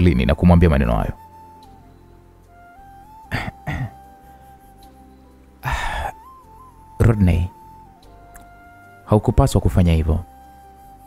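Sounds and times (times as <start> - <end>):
soft background music: 0.0 - 11.0
person clearing throat: 3.3 - 4.0.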